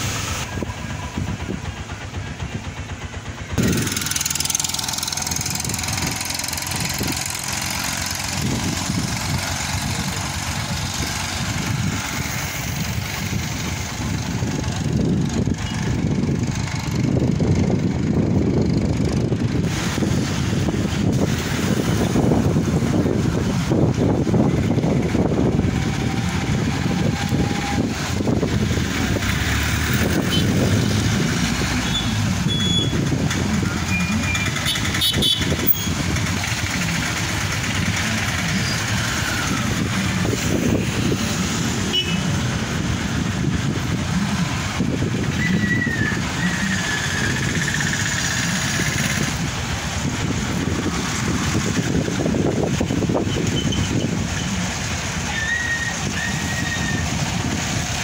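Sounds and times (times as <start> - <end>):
road traffic on wet street: 0.0 - 58.0.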